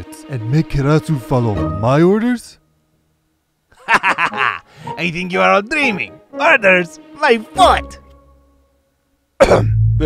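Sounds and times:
person coughing: 9.4s - 9.8s.

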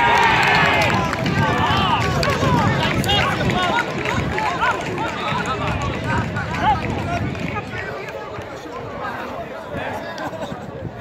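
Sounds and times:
people shouting and cheering: 0.0s - 11.0s.

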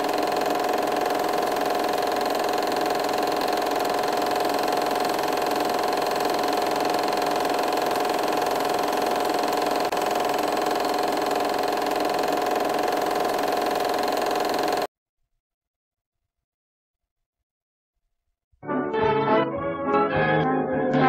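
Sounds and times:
film projector whirring: 0.0s - 14.9s.

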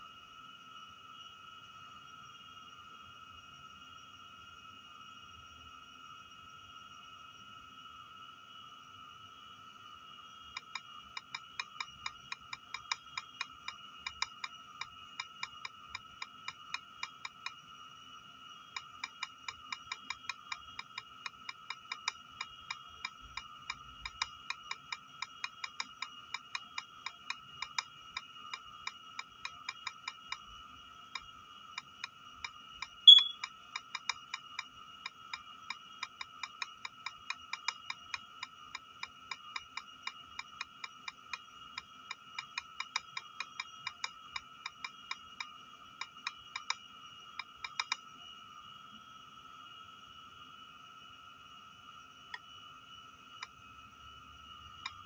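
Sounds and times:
faint high whine: 0.0s - 55.0s
on-screen keyboard key clicks: 33.1s - 33.4s
short beep: 33.1s - 33.4s.

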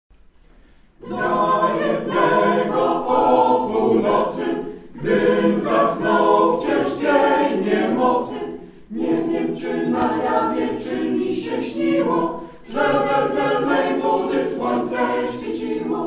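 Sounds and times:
mixed choir singing a cappella: 1.0s - 16.0s.

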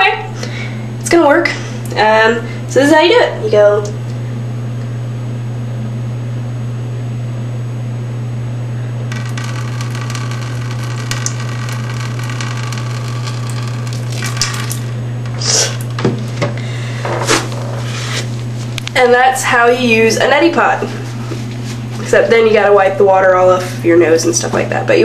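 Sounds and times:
low hum: 0.0s - 24.9s
water running and splashing: 9.2s - 15.0s.

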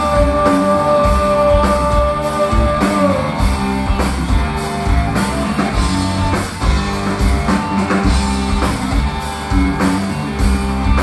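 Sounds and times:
drum kit beat: 0.0s - 11.0s
electric bass: 0.0s - 11.0s
electric guitar: 0.0s - 11.0s.

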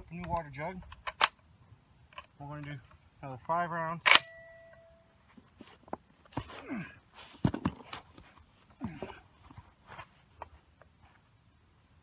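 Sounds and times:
short grunting breaths: 6.4s - 7.0s.

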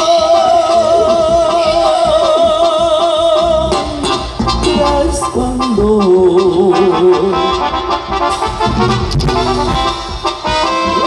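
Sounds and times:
drums: 0.0s - 11.0s
brass band playing: 3.3s - 11.0s
sousaphone bass line: 8.3s - 10.4s.

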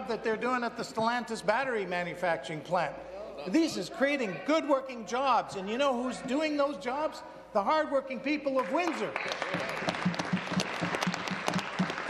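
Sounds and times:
group applauding: 8.5s - 12.0s.

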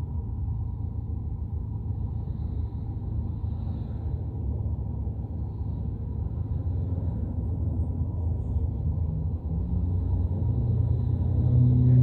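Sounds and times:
vehicle rumble from inside cabin: 0.0s - 12.0s.

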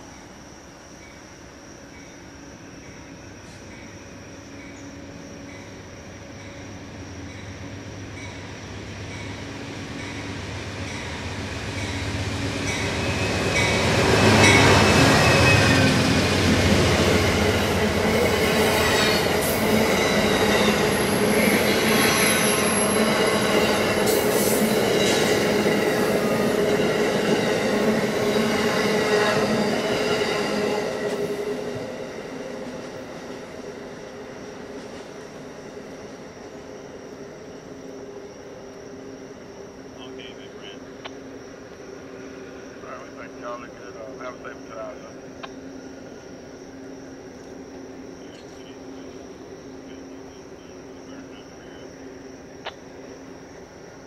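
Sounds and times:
train wheels squealing: 0.0s - 31.9s.

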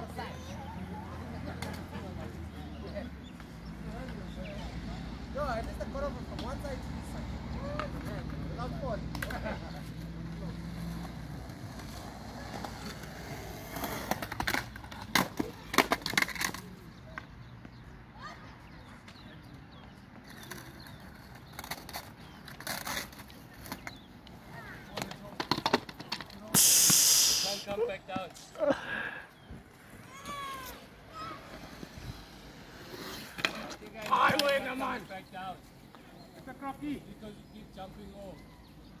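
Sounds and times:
skateboard rolling on concrete: 0.0s - 39.0s
skateboard clacks and knocks: 13.7s - 16.7s, 24.9s - 26.4s.

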